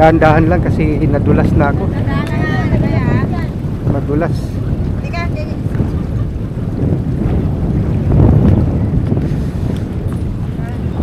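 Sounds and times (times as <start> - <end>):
wind blowing across microphone: 0.0 - 11.0.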